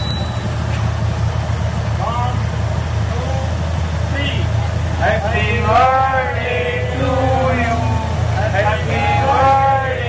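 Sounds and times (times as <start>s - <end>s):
motorcycle engines idling: 0.0s - 10.0s.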